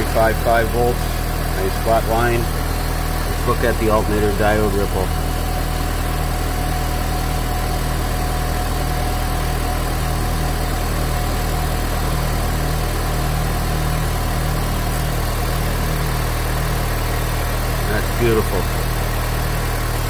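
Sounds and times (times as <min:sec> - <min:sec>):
car engine idling: 0:00.0 - 0:20.0
thin steady whine: 0:00.0 - 0:20.0.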